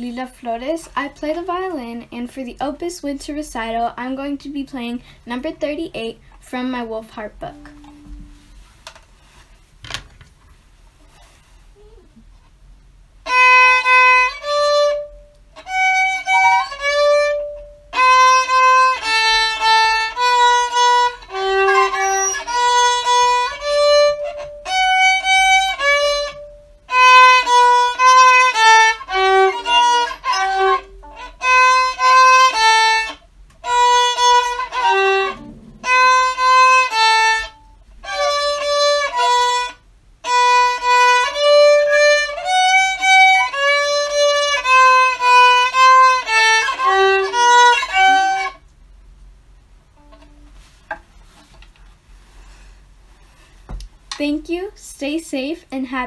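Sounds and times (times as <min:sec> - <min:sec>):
solo violin bowed notes: 0:13.2 - 0:48.6.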